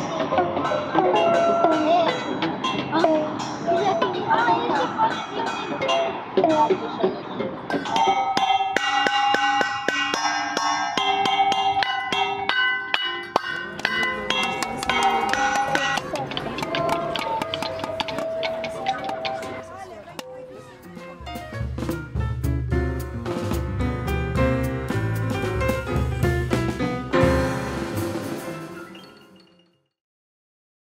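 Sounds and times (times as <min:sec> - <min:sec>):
children's voices: 0:00.0 - 0:08.1, 0:14.0 - 0:21.2
homemade percussion knocks: 0:13.3 - 0:19.6
music with heavy bass beat: 0:20.8 - 0:28.9.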